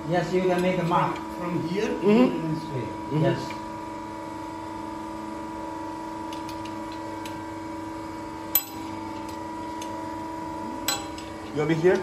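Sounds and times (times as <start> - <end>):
machine electrical hum: 0.0 - 12.0.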